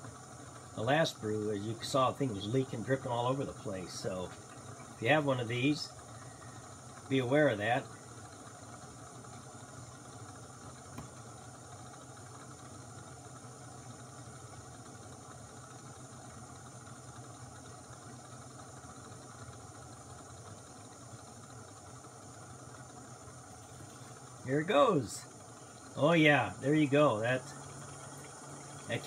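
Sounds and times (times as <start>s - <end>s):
gas stove burner hiss: 0.0s - 29.0s.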